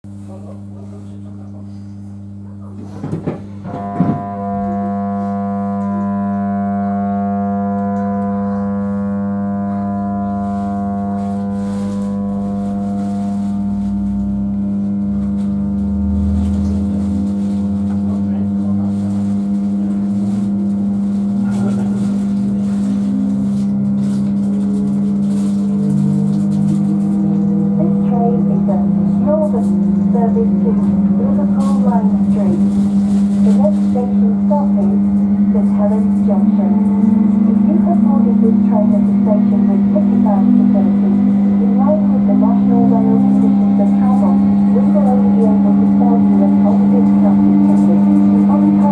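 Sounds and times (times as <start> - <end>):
train electrical hum: 0.1 - 48.9
faint rising whine: 6.1 - 48.9
train running rumble: 11.6 - 48.9.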